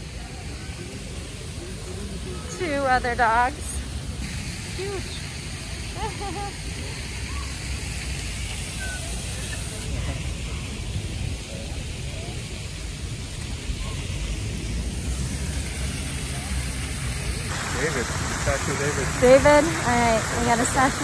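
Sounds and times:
faint distant voices: 0.0 - 21.0
low city rumble: 0.0 - 21.0.

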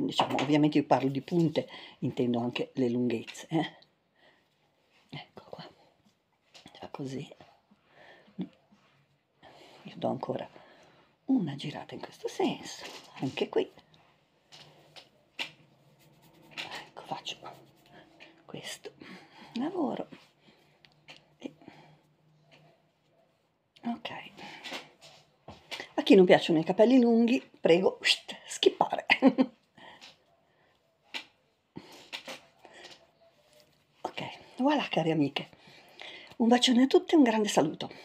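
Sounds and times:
faint soft sounds: 0.5 - 38.0
hands brushing through hair: 14.6 - 18.3
sharp rustle of hair: 14.7 - 18.3.

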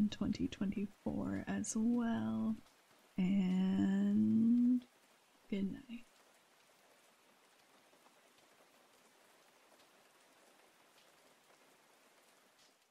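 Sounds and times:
rain hiss: 0.9 - 12.9.

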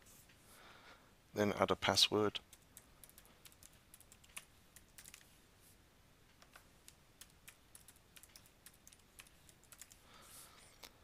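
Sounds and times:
computer keyboard typing: 2.4 - 5.3, 6.4 - 10.0.

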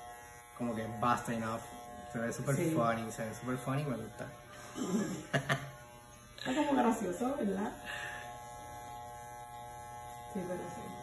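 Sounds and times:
electric hair clippers humming: 0.0 - 11.0.

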